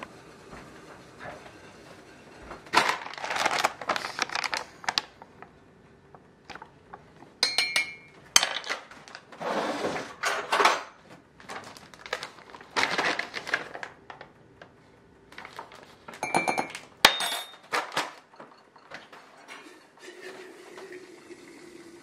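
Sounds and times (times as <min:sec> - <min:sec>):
foil bag rustling: 0:02.7 - 0:05.3, 0:11.4 - 0:16.2
clinks against glass: 0:07.4 - 0:08.2, 0:16.2 - 0:17.7.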